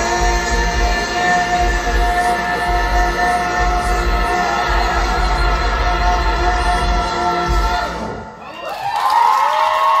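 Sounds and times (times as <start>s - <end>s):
audience applauding and cheering: 8.4s - 10.0s.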